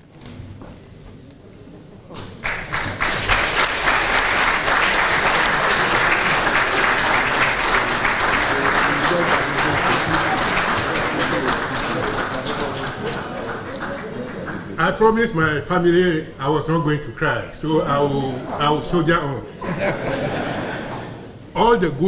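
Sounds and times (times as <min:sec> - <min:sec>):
audience applauding: 0:02.2 - 0:15.2.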